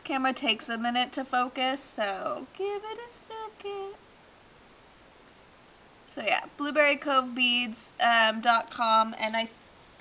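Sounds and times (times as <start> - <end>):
faint room tone hiss: 0.0 - 10.0.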